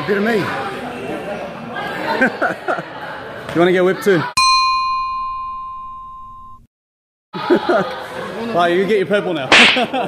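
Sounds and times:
bell-like ding: 4.4s - 6.6s.

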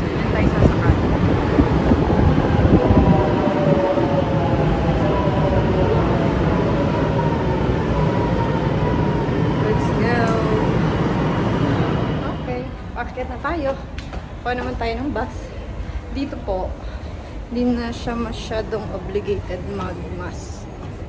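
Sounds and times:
metro train wheels rumbling on rail: 0.0s - 21.0s.

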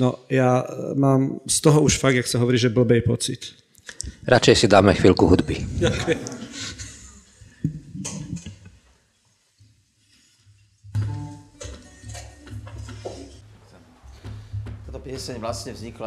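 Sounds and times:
voices: 4.0s - 8.5s, 14.9s - 16.0s
laughter: 5.8s - 7.2s
acoustic guitar played lightly: 10.9s - 13.4s.

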